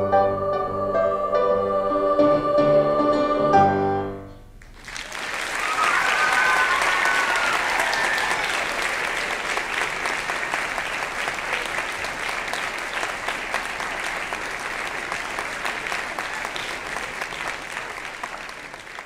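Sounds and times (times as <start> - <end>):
audience applauding: 4.6 - 19.0
people cheering: 4.8 - 19.0.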